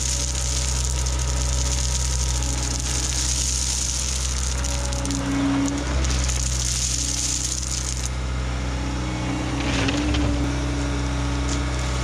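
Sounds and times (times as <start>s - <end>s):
crushed stone pouring: 0.0s - 8.2s
diesel engine running: 0.0s - 12.0s.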